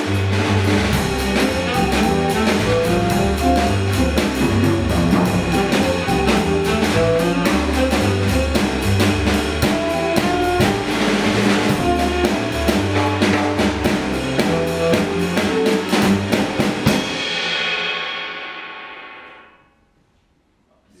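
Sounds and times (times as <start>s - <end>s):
drum kit: 0.0s - 19.4s
low bass line: 1.3s - 8.4s.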